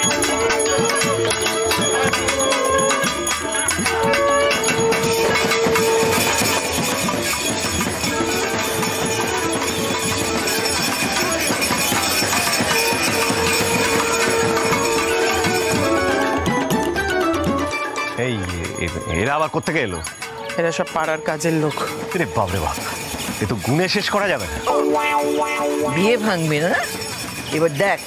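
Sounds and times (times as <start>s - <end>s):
fast drum and percussion beat: 0.0s - 28.0s.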